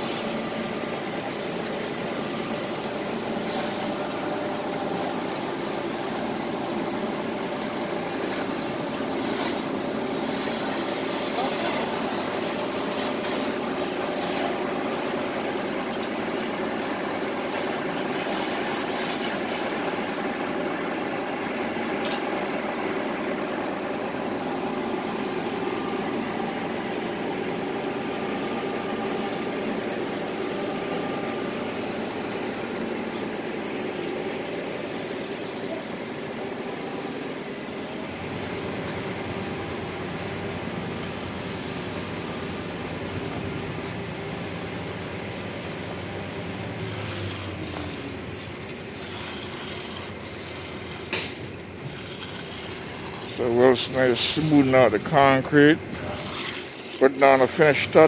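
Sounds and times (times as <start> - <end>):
concrete pouring down chute: 0.0 - 20.9, 39.8 - 43.3, 44.6 - 58.0
mixer truck engine running: 0.0 - 58.0
clicks and scrapes: 48.6 - 55.1.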